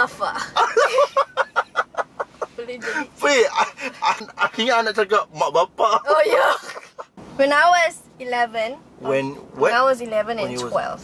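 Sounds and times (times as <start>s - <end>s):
hearty laughter: 0.4s - 4.5s, 6.4s - 7.1s.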